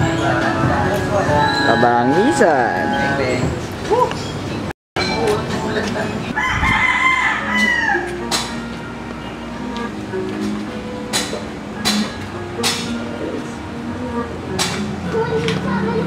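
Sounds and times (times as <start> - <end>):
rooster crowing: 6.4 - 8.3.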